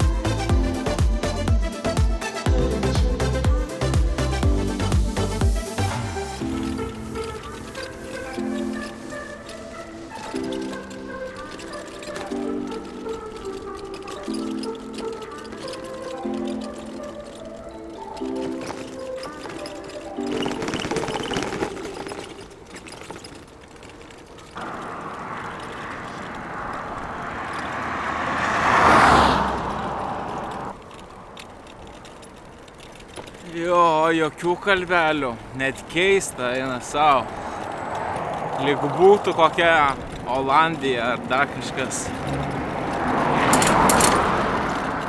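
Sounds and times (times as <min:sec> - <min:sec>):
vehicle passing on road: 0:02.7 - 0:45.0
car driving past: 0:24.6 - 0:31.7, 0:36.8 - 0:45.0.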